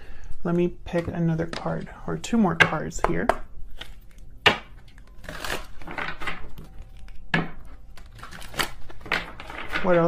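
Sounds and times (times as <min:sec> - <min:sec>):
cards shuffling: 0:03.7 - 0:10.0.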